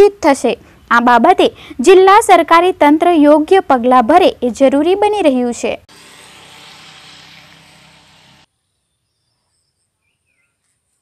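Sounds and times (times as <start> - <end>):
outdoor background hiss: 0.0 - 11.0
faint bird chirps: 8.6 - 11.0.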